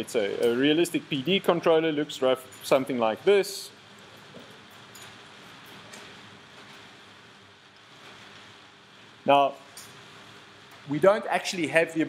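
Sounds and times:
faint steady hiss: 5.4s - 12.0s.

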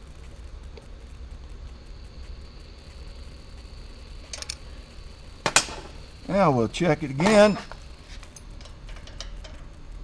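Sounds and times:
metallic ticks of hand tools: 4.3s - 4.6s, 8.3s - 9.8s.

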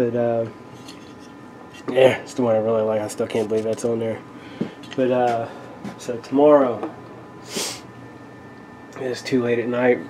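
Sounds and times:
man sniffing through nose: 7.4s - 7.9s.

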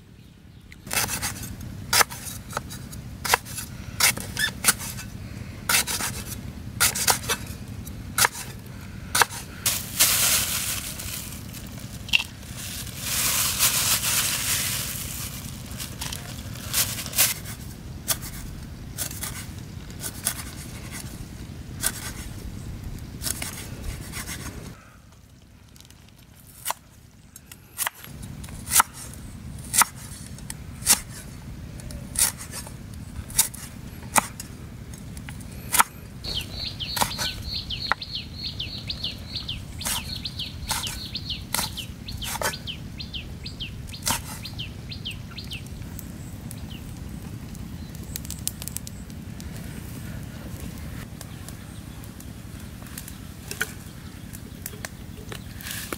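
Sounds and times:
bird chirping rapidly: 36.2s - 46.8s.

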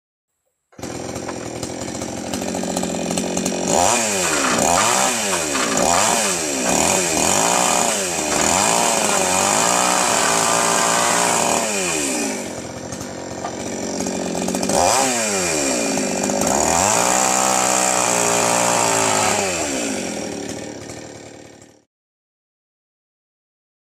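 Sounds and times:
chainsaw revving and cutting wood: 0.8s - 21.9s.

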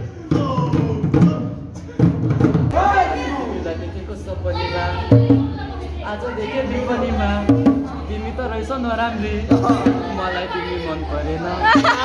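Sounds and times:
young voices chattering: 2.7s - 12.0s.

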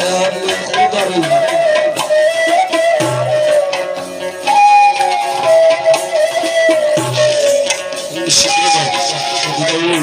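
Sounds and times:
jingling frame drum: 0.0s - 10.0s
sustained melody line: 0.0s - 10.0s.

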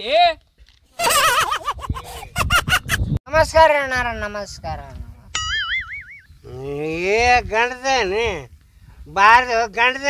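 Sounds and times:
cartoon boing twang: 5.3s - 6.2s
man talking: 6.4s - 8.5s, 9.1s - 10.0s.

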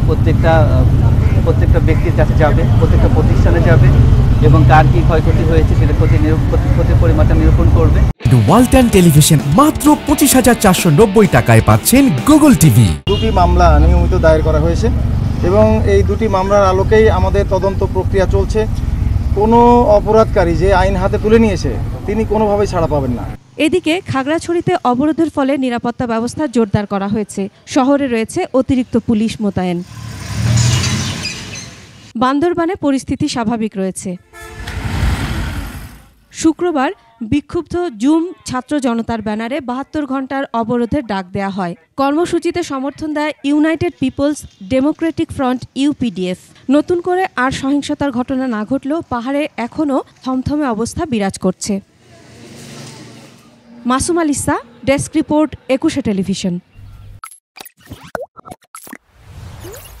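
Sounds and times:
truck engine driving past: 0.8s - 8.5s, 29.7s - 32.1s, 34.4s - 36.3s, 51.9s - 56.1s
rush of noise: 34.6s - 36.2s
cartoon-like pops and plops: 57.2s - 59.0s.

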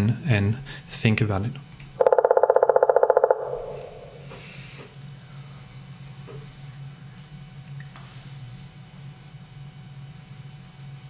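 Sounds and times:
low steady hum: 0.0s - 11.0s
woodpecker drumming playback: 2.0s - 4.4s.

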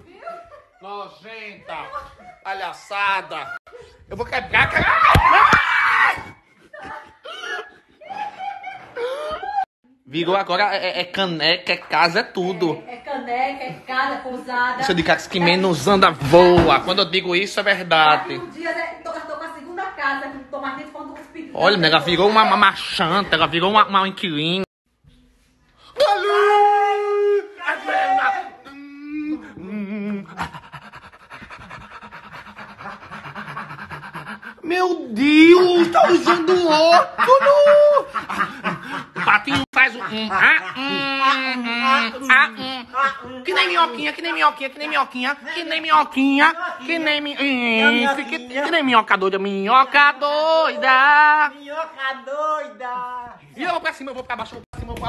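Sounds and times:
man panting like a dog: 6.4s - 9.4s, 29.3s - 34.8s, 38.0s - 39.2s
person laughing and snickering: 35.4s - 42.2s.

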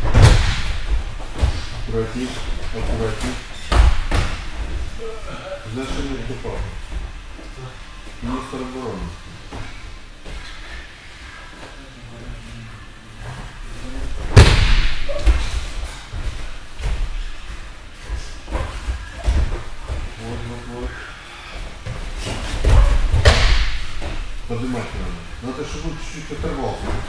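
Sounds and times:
bodies slamming onto gym mats: 0.0s - 2.0s, 2.6s - 4.9s, 14.2s - 17.2s, 21.8s - 24.4s.

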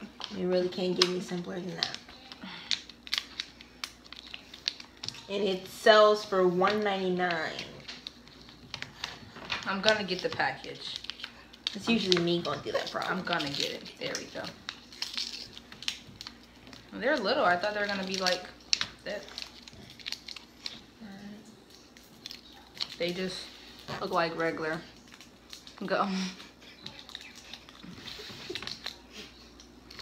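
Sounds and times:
gum wrapper crinkling: 0.0s - 5.8s, 7.2s - 21.0s, 21.6s - 30.0s.

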